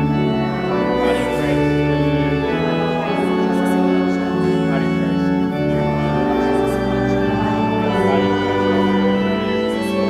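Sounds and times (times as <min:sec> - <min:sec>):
organ playing slow chords: 0:00.0 - 0:10.0.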